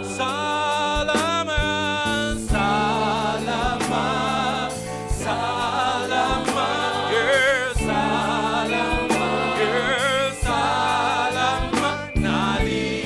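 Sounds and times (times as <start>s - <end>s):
bass notes: 0.0s - 13.0s
drum hits: 1.1s - 9.8s
group singing in unison: 2.1s - 13.0s.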